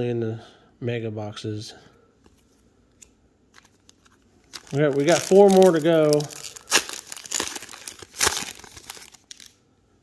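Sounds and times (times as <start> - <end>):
wrapper tearing and crinkling: 3.6 - 9.6.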